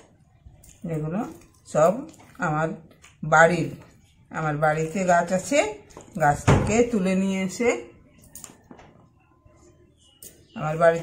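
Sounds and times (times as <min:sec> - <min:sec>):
woman talking: 0:00.8 - 0:08.0, 0:10.6 - 0:11.0.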